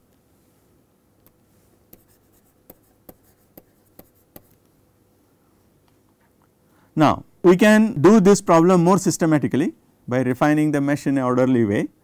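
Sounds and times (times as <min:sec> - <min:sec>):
stylus tapping on tablet screen: 0:01.9 - 0:04.6.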